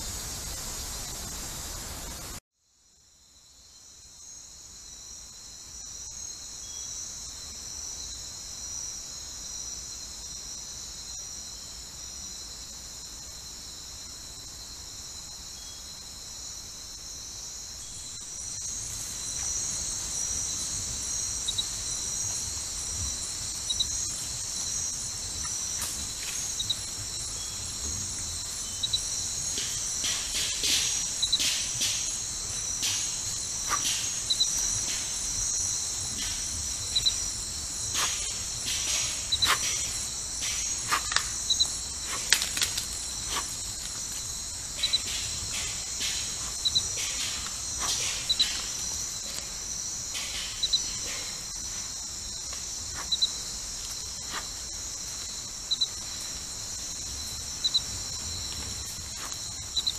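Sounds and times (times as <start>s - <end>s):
crickets trilling: 0.0s - 59.9s.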